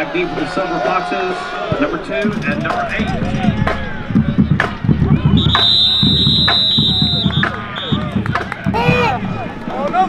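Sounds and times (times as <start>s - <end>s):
referee's whistle blasts: 5.4s - 8.1s.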